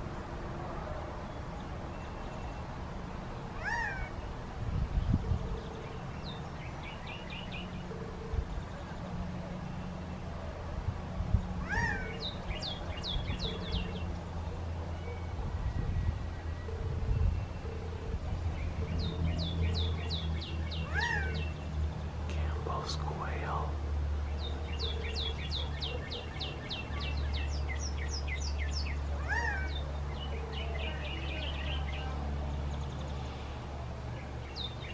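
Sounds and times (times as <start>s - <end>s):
quail call: 3.6s - 4.1s, 11.7s - 12.2s
low steady hum: 4.2s - 34.9s.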